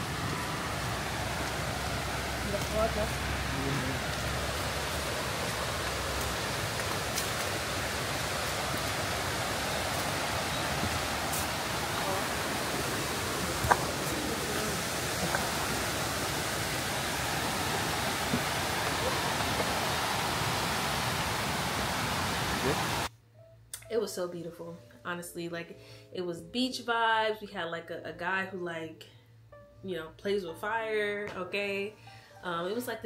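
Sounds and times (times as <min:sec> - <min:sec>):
waterfall rushing: 0:00.0 - 0:23.1.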